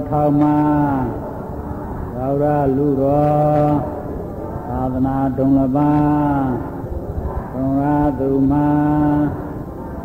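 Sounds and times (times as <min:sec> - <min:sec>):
man chanting in low monotone: 0:00.0 - 0:10.0.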